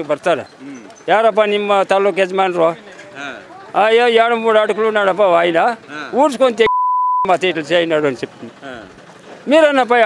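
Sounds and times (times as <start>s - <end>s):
censor bleep: 6.7s - 7.3s.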